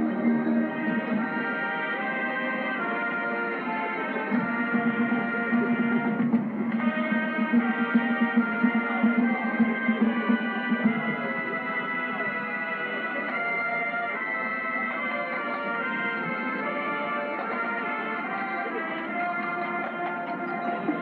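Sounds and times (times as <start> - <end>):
brass band playing held chords: 0.0 - 21.0.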